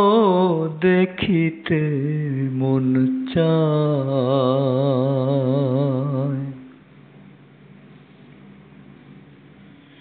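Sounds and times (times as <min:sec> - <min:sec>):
person singing long vibrato note: 0:00.0 - 0:06.8.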